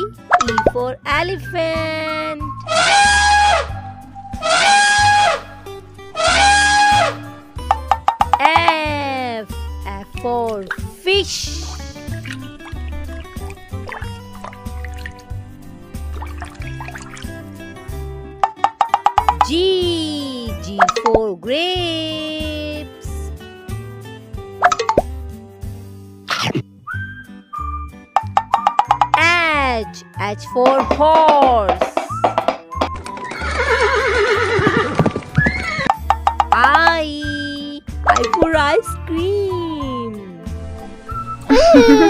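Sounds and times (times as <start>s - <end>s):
children's background music: 0.0s - 26.0s, 26.9s - 42.0s
rising water-drop sound effects: 11.5s - 17.5s
hoofbeats: 30.6s - 36.5s
horse neighing: 33.3s - 36.0s.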